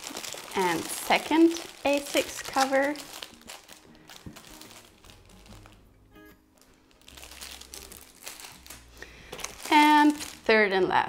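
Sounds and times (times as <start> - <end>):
plastic sleeves crinkling: 0.0 - 10.8
faint music: 0.0 - 11.0.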